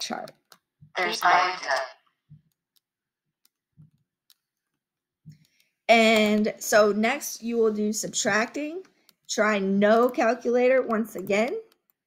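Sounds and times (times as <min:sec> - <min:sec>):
computer mouse clicks: 0:00.0 - 0:00.7, 0:02.1 - 0:12.0.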